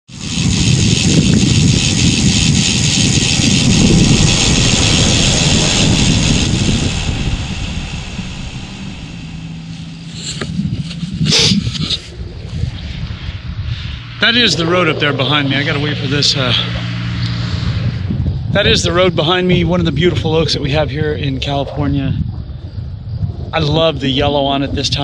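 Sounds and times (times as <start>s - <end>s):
vehicle passing on road: 0.4s - 18.6s.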